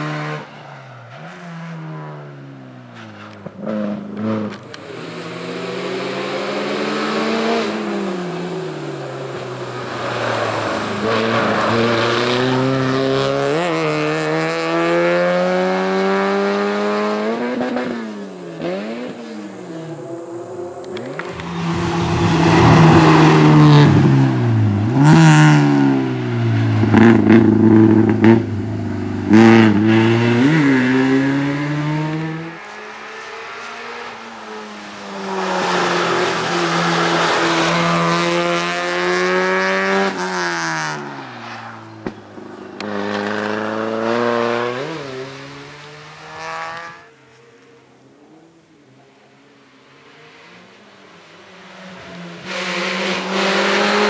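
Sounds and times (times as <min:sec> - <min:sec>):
race car engine revving: 0:03.2 - 0:34.2, 0:34.8 - 0:41.1, 0:42.0 - 0:47.0, 0:52.0 - 0:54.0.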